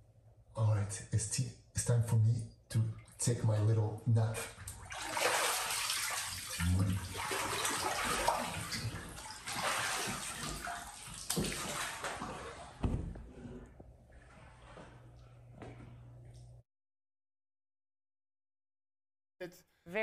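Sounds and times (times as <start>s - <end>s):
low steady hum: 0.0s - 16.6s
water splashing and sloshing: 4.4s - 13.3s.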